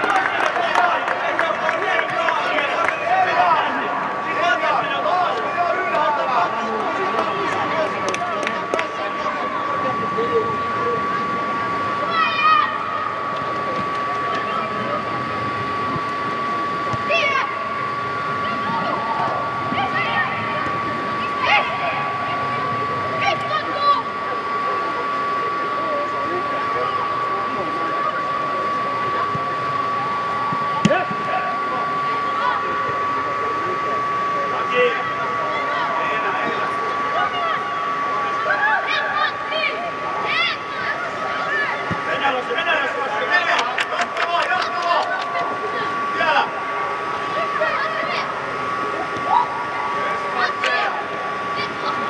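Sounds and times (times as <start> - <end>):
blower machine hum: 0.0 - 52.0.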